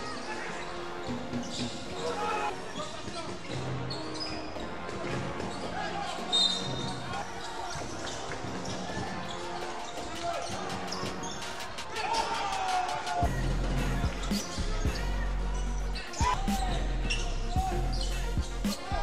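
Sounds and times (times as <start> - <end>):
background music: 0.0 - 19.0
voices: 5.0 - 19.0.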